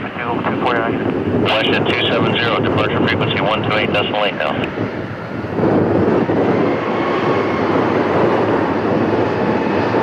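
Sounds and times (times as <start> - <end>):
jet engines at taxi thrust: 0.0 - 10.0.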